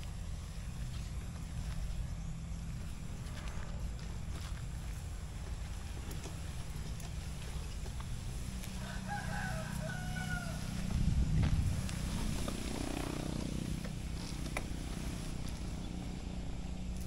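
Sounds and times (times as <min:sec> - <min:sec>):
low rumble: 0:00.0 - 0:17.0
rooster crowing: 0:08.6 - 0:11.0.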